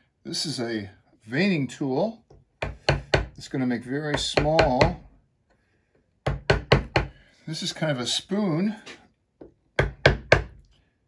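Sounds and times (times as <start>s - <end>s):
mallet striking chisel into wood: 2.6s - 3.4s, 4.1s - 5.0s, 6.2s - 7.1s, 9.4s - 10.6s.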